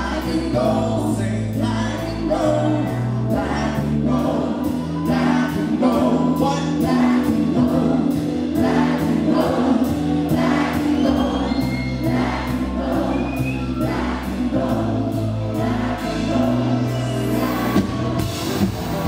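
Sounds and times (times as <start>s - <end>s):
man singing: 0.0s - 12.2s
electronic pop song over speakers: 0.0s - 19.0s.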